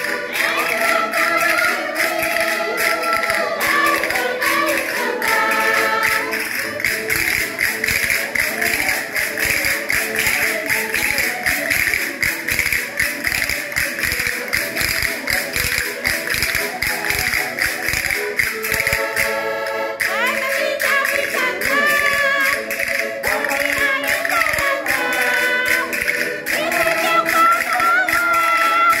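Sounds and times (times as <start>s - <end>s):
fast clicking hand percussion: 0.0s - 29.0s
group singing a folk song: 0.0s - 29.0s.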